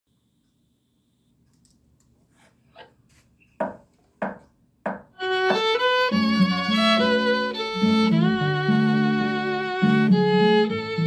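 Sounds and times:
short knocks: 3.6 - 5.8
violin bowed melody: 5.2 - 11.0.

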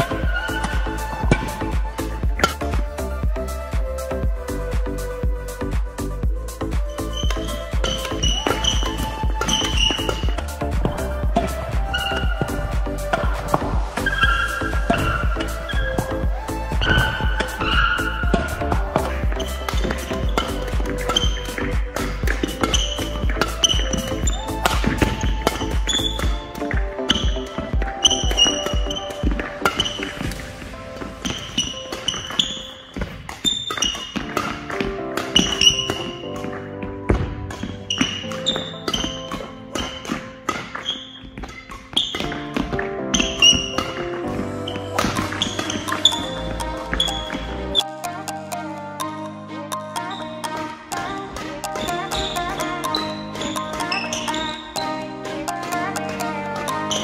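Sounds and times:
background music with high notes: 0.0 - 57.0.

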